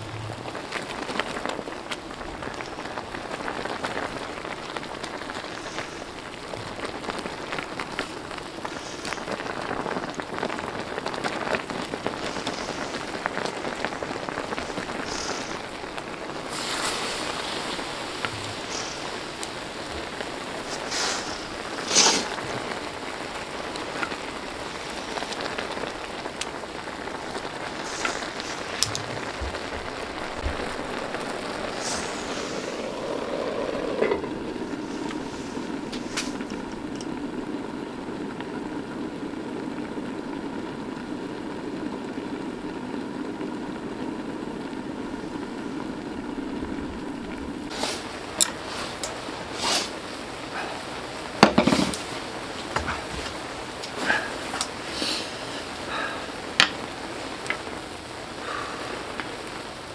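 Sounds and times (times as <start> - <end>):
broth boiling hard in a pan: 0.0 - 59.9.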